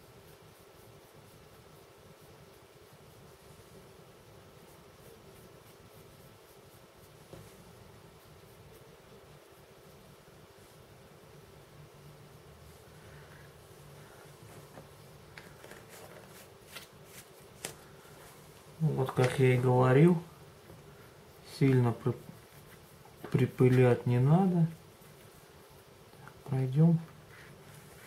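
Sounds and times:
small brush scratching on plastic: 0:00.0 - 0:10.3, 0:12.4 - 0:20.3, 0:20.9 - 0:28.0
low room hum: 0:00.0 - 0:28.0
man talking: 0:18.8 - 0:20.3, 0:21.4 - 0:22.3, 0:23.3 - 0:24.8, 0:26.4 - 0:27.1.

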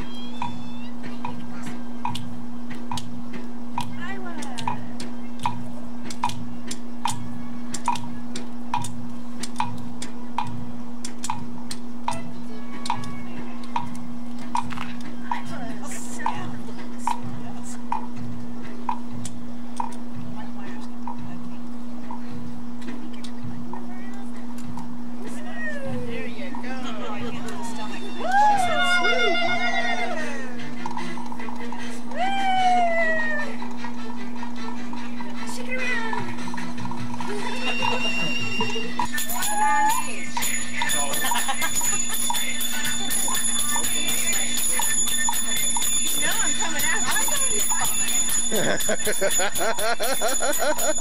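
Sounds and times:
steady low hum: 0:00.0 - 0:51.0
indistinct voices and laughter: 0:14.8 - 0:18.8, 0:25.2 - 0:51.0
high voice gliding down: 0:28.0 - 0:30.6
dance music with jingling rhythm: 0:35.4 - 0:51.0.

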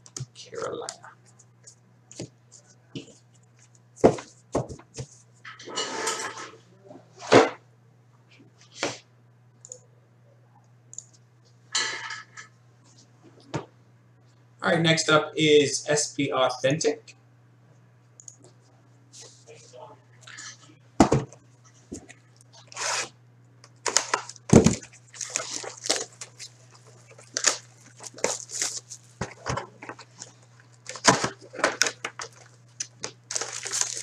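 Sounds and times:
low steady hum: 0:00.0 - 0:34.0
plastic shrink wrap ripping: 0:22.6 - 0:23.1, 0:23.8 - 0:29.2, 0:30.0 - 0:34.0.

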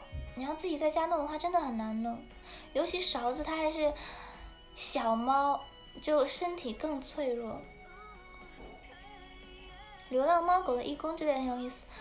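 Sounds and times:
woman talking: 0:00.0 - 0:04.0, 0:04.8 - 0:07.7, 0:10.0 - 0:11.9
faint background music: 0:00.0 - 0:12.0.

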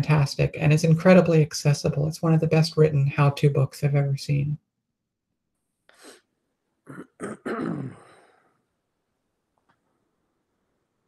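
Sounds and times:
woman clearing her throat: 0:06.9 - 0:08.3.

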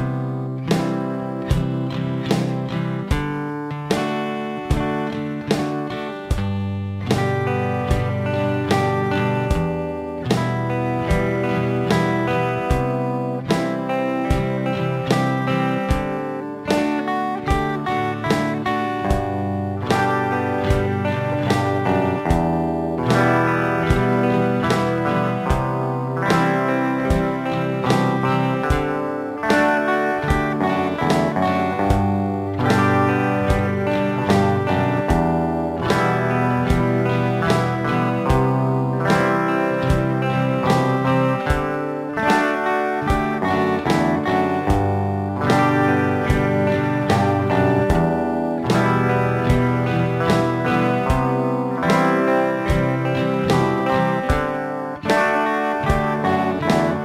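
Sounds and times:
electric and acoustic guitars strumming: 0:00.0 - 0:57.0.

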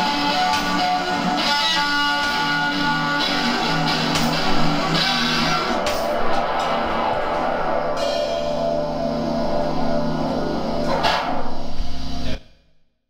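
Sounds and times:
bass guitar: 0:00.0 - 0:12.4
drum kit: 0:00.0 - 0:12.4
electric guitar with effects: 0:00.0 - 0:12.4
cymbal crashes: 0:00.0 - 0:12.6.

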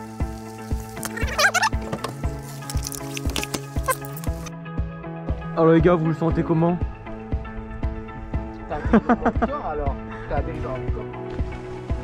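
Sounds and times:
music with steady beat and bass: 0:00.0 - 0:12.0.

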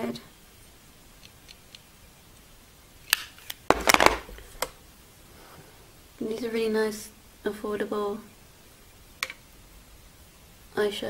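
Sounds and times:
makeup items clicking and knocking: 0:03.7 - 0:04.3.

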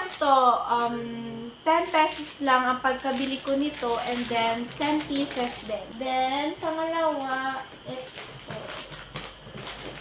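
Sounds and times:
knocks and rustling of handled items: 0:03.2 - 0:05.9, 0:06.6 - 0:10.0.

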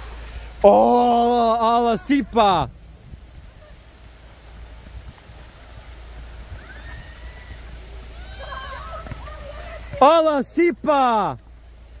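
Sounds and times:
heavy rain pouring: 0:00.0 - 0:12.0
faint distant shouts: 0:06.5 - 0:11.4.

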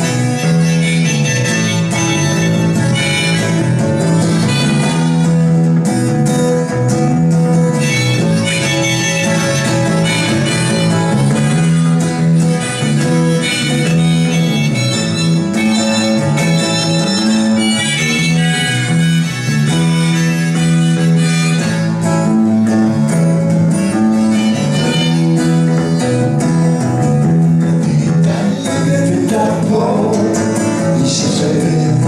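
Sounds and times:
held-note melody: 0:00.0 - 0:30.2
acoustic guitar: 0:00.0 - 0:32.0
electric bass: 0:00.0 - 0:32.0.

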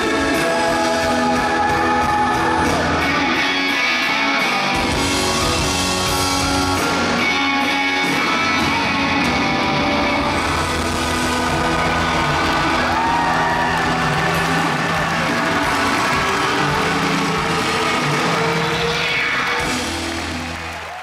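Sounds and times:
crowd cheering: 0:00.0 - 0:21.0
rock band holding loud chords: 0:00.0 - 0:21.0.

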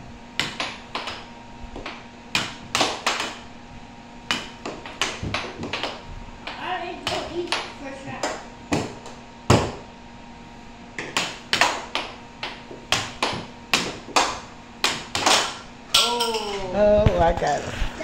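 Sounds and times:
air hockey puck clacking: 0:00.4 - 0:03.5, 0:04.3 - 0:09.8, 0:11.0 - 0:16.6.

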